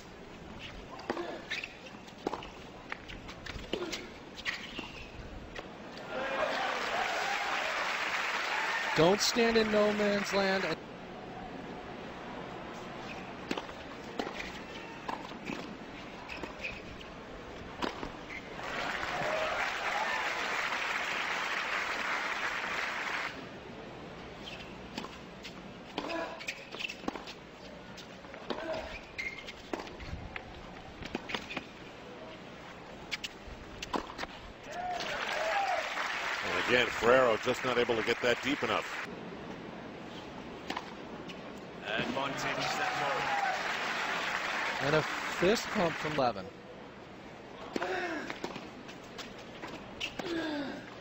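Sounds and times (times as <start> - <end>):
crowd applause: 6.0 - 10.8, 18.6 - 23.4, 35.0 - 39.1, 42.2 - 46.2.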